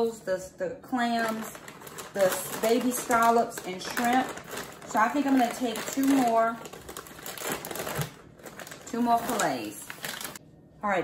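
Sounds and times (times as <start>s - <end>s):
plastic packaging crinkling: 1.0s - 10.4s.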